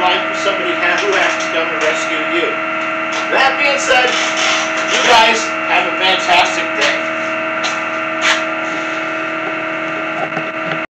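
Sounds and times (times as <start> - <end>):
machinery hum: 0.0 - 10.9.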